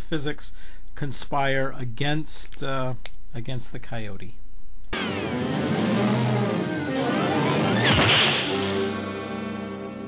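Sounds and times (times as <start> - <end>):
held musical chord ringing: 5.0 - 10.0.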